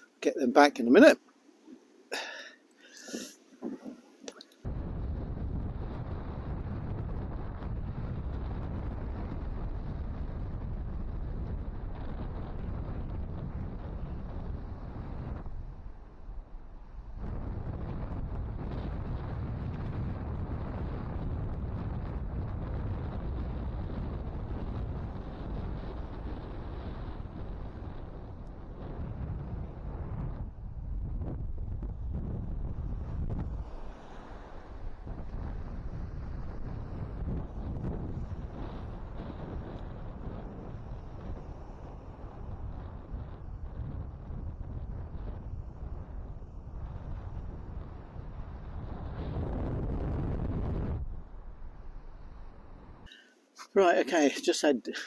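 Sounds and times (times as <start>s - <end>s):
wind buffeting microphone: 4.6s - 53.1s
waves breaking on shore: 32.7s - 43.0s.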